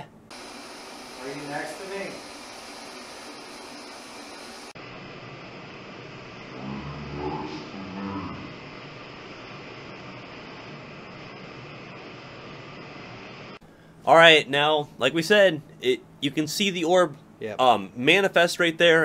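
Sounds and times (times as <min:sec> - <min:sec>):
camera recording hiss: 0:00.0 - 0:06.6, 0:07.3 - 0:19.0
slowed-down man's voice: 0:06.5 - 0:08.6.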